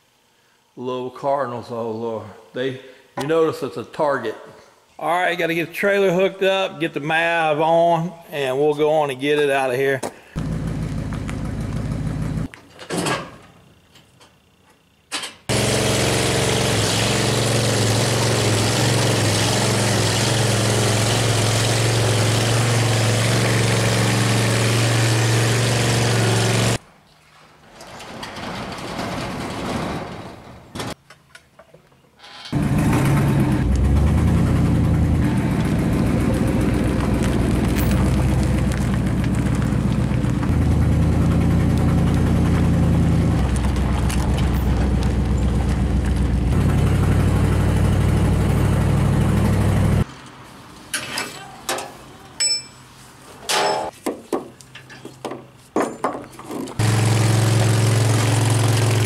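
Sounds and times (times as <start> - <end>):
pickup truck engine running: 10.4 - 12.5, 32.6 - 50.0, 56.8 - 59.0.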